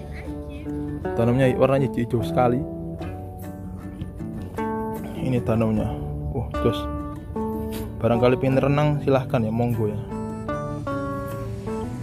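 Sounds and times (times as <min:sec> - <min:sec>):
acoustic guitar picking melody: 0:00.0 - 0:12.0.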